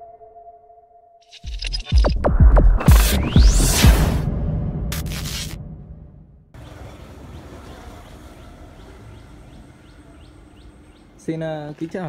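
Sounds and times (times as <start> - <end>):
intro music: 0.0 - 6.4
low rumble: 2.3 - 6.5
small bird chirping: 6.6 - 11.3.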